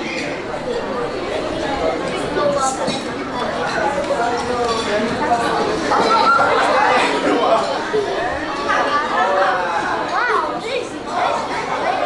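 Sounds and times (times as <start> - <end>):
people chattering in a hall: 0.0 - 12.0.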